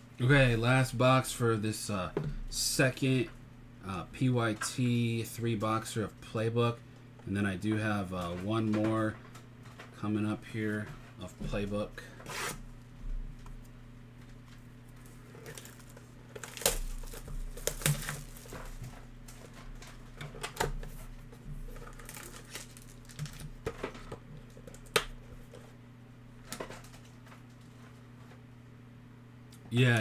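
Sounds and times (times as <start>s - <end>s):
steady low hum: 0.0s - 30.0s
cardboard and foil crinkling: 14.9s - 20.2s, 21.0s - 24.9s.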